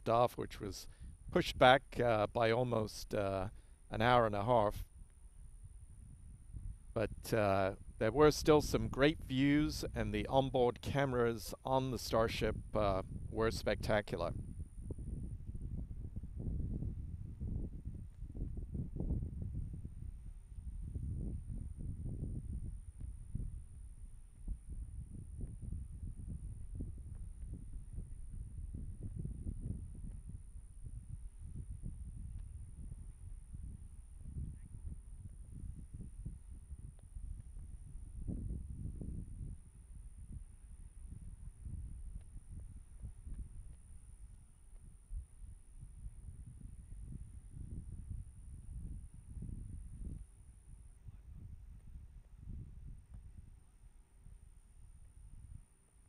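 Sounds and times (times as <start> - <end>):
faint high-pitched whine: 0.0 - 56.0
wind buffeting microphone: 0.0 - 56.0.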